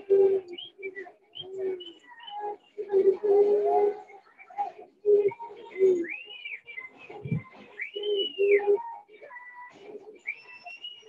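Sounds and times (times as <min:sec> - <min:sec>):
bird whistles rising and falling: 0:10.2 - 0:11.0.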